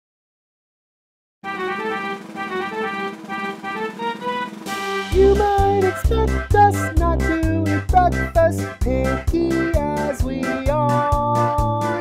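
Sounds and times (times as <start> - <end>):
accordion polka tune: 1.4 - 12.0
steady beat: 1.5 - 12.0.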